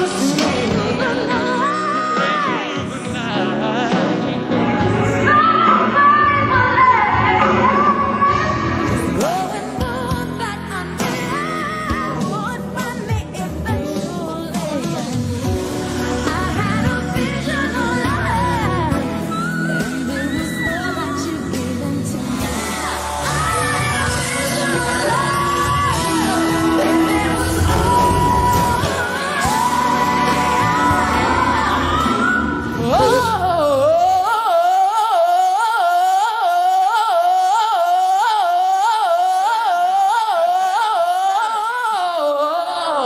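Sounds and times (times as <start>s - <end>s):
woman singing pop ballad: 0.0s - 3.0s, 5.2s - 43.0s.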